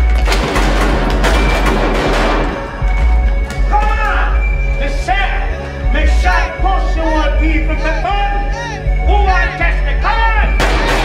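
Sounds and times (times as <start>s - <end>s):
heavy sub-bass line: 0.0s - 11.0s
crowd noise: 1.0s - 11.0s
drill track through sound system: 3.0s - 11.0s
rapped vocal: 3.6s - 10.7s.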